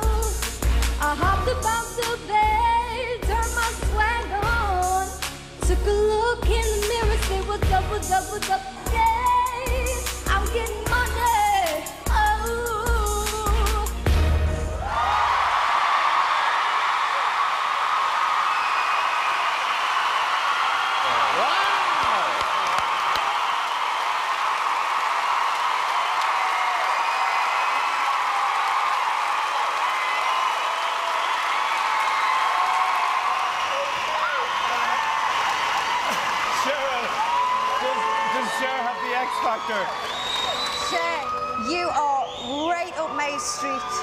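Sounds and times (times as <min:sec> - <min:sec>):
audience cheering with whoops: 0:14.7 - 0:44.0
audience applauding: 0:14.8 - 0:43.0.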